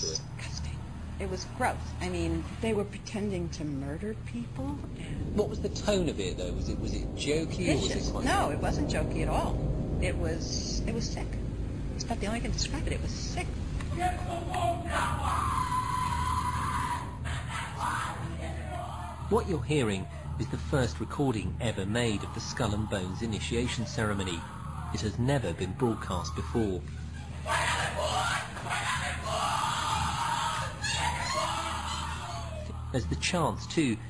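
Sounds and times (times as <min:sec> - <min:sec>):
muffled raised voices: 0:00.0 - 0:03.4, 0:04.0 - 0:11.3, 0:12.0 - 0:33.6
steady low hum: 0:00.0 - 0:34.0
people shouting: 0:13.9 - 0:20.8, 0:21.7 - 0:26.6, 0:27.2 - 0:33.2.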